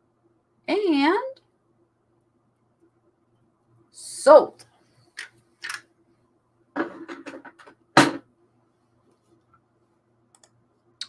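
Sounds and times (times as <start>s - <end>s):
typing on keyboard: 10.3s - 10.6s.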